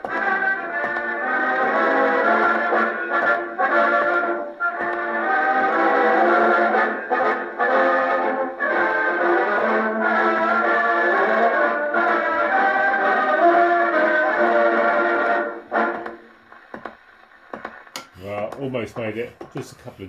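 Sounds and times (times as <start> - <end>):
record clicking: 0.0 - 6.2, 11.6 - 19.6
brass band march on gramophone: 0.0 - 18.0
gramophone needle noise: 0.0 - 20.0.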